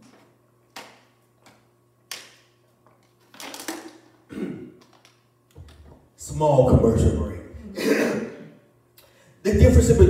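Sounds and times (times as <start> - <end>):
plastic bottle crackling: 3.2 - 4.2.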